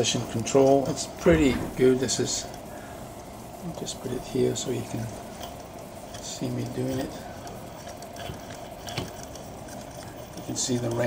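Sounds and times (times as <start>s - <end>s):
faint clicks and handling noise: 0.0s - 11.0s
steady faint hum: 0.0s - 11.0s.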